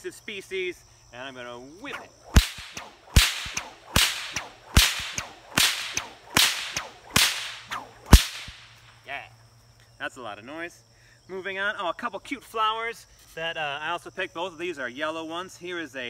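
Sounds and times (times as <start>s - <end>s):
crickets chirping: 0.0s - 16.0s
whip swish: 1.8s - 8.8s
bullwhip cracks: 1.9s - 9.0s.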